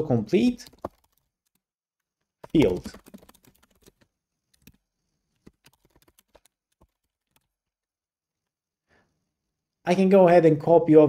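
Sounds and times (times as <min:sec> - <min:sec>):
faint keyboard typing: 0:00.5 - 0:08.6.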